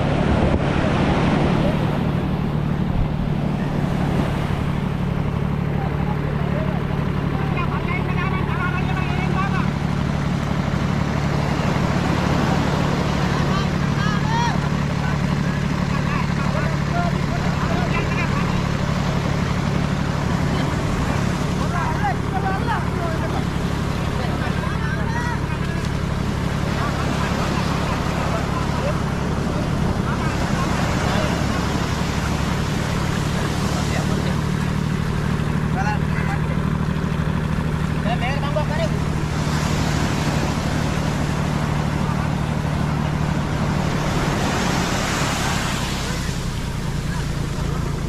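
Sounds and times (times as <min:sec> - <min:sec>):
surf breaking on shore: 0:00.0 - 0:48.0
tractor engine droning: 0:00.0 - 0:48.0.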